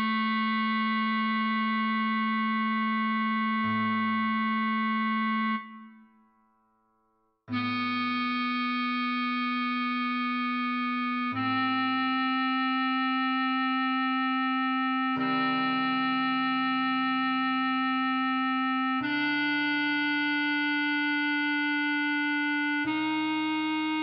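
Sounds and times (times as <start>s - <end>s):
bass clarinet slow melody: 0.0s - 6.2s, 7.5s - 24.0s.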